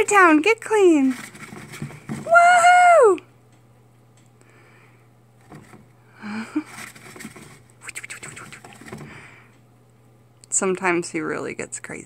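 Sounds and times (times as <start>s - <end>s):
dust rustling against plastic: 6.6s - 9.1s.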